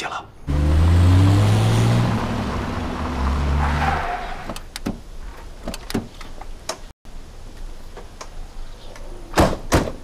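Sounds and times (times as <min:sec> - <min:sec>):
car engine running: 0:00.5 - 0:03.6.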